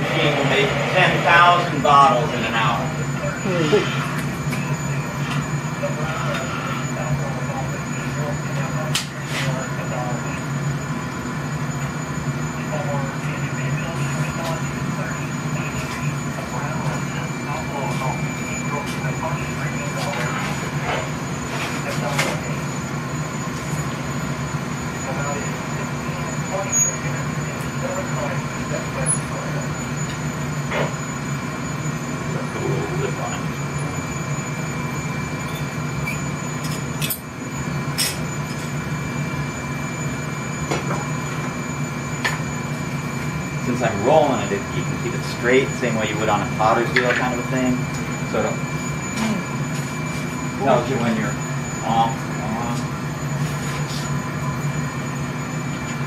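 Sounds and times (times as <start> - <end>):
furnace and burner blower drone: 0.0 - 56.0.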